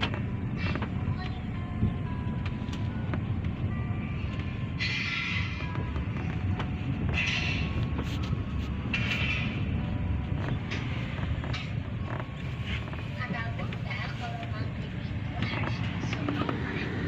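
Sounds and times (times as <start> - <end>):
car cabin rumble: 0.0 - 17.0.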